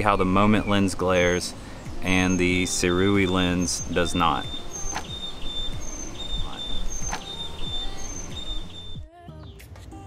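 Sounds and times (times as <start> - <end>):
insects chirping: 1.6 - 9.0.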